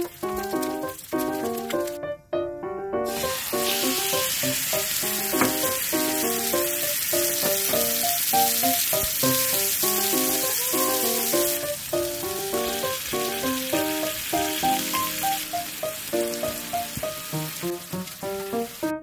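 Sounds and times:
food sizzling in hot oil: 0:00.0 - 0:02.0, 0:03.1 - 0:19.0
soft piano music: 0:00.0 - 0:19.0.

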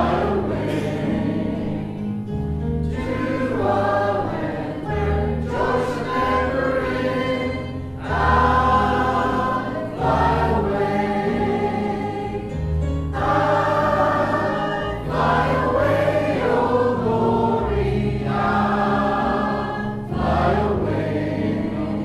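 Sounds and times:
choir singing a hymn: 0:00.0 - 0:22.0.

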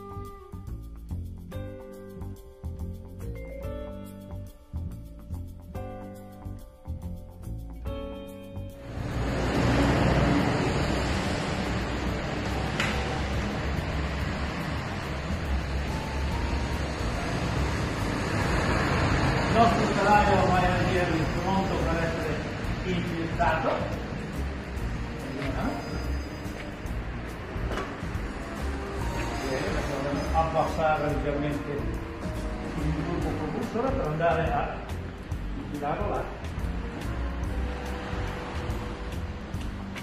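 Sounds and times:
rumbling room noise: 0:08.8 - 0:40.0
men talking: 0:19.5 - 0:24.0, 0:25.2 - 0:26.0, 0:29.3 - 0:32.0, 0:32.6 - 0:35.0, 0:35.6 - 0:36.4.

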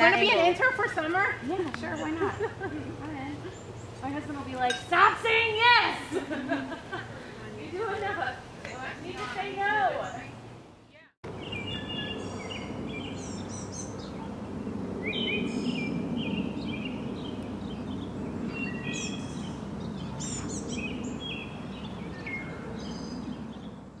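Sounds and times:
birds chirping: 0:00.0 - 0:05.8, 0:06.4 - 0:24.0.

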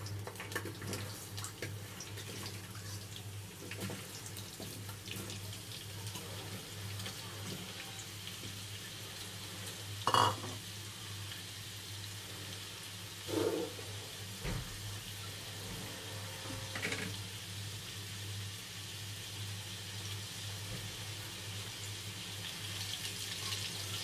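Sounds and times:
potatoes sizzling in oil: 0:01.2 - 0:24.0.

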